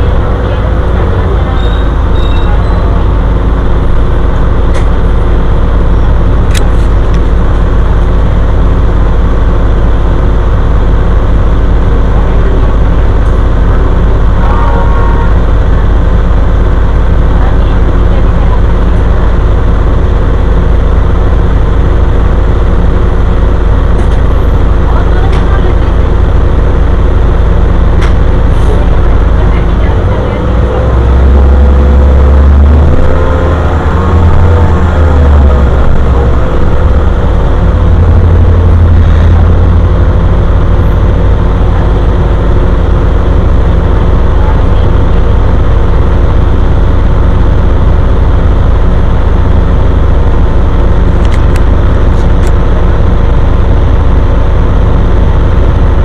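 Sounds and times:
bus engine rumble: 0.0s - 56.0s
road noise: 0.0s - 56.0s.

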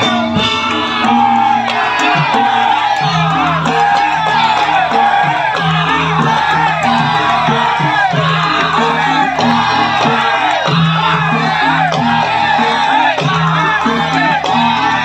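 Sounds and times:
gamelan gongs and percussion: 0.0s - 15.0s
voices shouting and singing: 0.0s - 15.0s.

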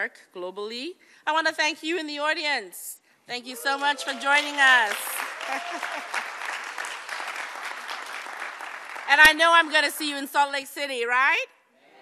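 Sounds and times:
crowd applauding: 3.6s - 9.8s.

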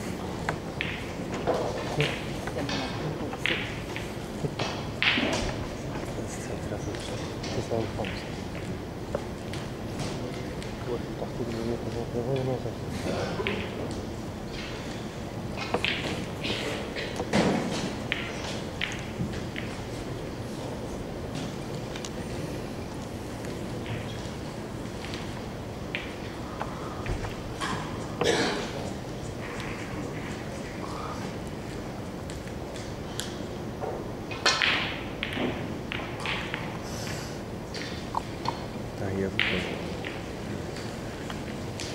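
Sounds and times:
cue striking ball: 0.0s - 6.2s, 15.5s - 20.6s, 33.4s - 36.8s
snooker balls clicking: 0.0s - 41.9s.

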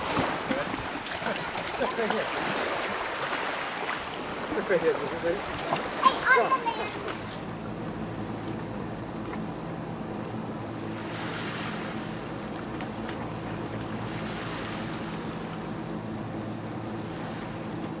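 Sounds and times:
steady low hum: 0.0s - 18.0s
wind and sea noise: 0.0s - 18.0s.

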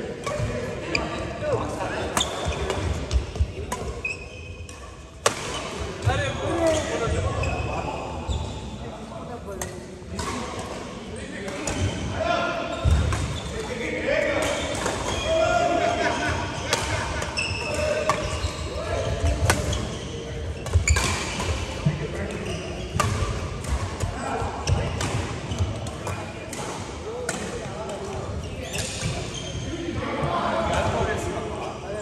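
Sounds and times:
players' voices: 0.0s - 4.5s, 5.2s - 32.0s
racket hitting shuttlecock: 4.7s - 6.8s.

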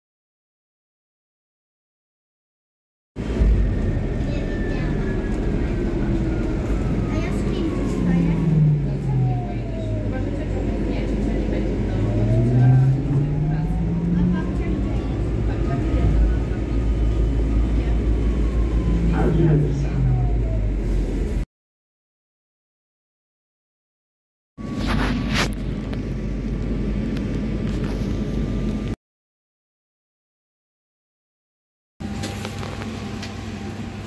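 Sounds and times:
bus engine rumble: 3.2s - 21.4s, 24.6s - 29.0s, 32.0s - 34.0s
drivetrain whine: 3.2s - 21.4s.

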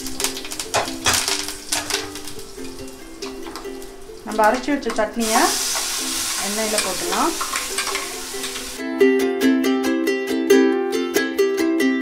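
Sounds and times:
seeds sizzling in hot oil: 0.0s - 8.8s
background music: 0.0s - 12.0s.

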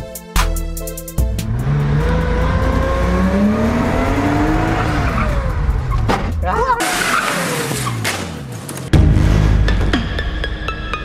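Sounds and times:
car engine revving: 1.2s - 9.8s
tyres squealing: 4.7s - 8.2s.

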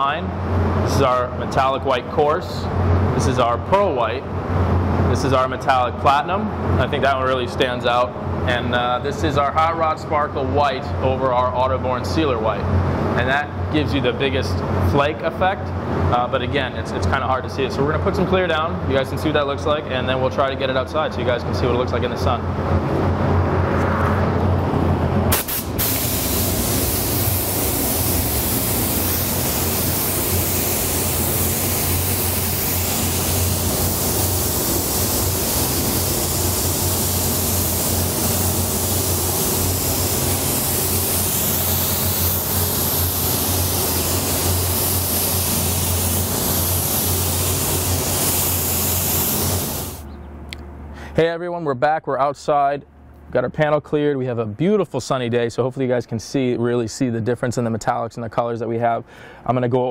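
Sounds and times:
steady low hum: 0.0s - 58.3s
spray gun hissing: 25.3s - 50.1s.

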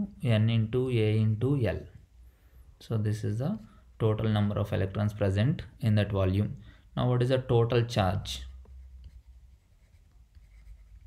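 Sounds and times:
stylus scratching on tablet screen: 8.7s - 11.0s.

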